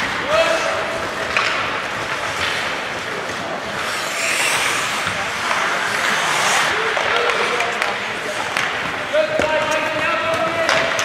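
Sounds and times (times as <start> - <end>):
hockey sticks and puck knocking: 0.0 - 11.0.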